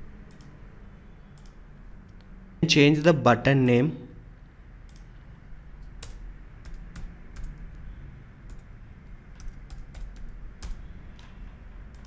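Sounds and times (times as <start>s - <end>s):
typing on computer keyboard: 5.8s - 12.0s.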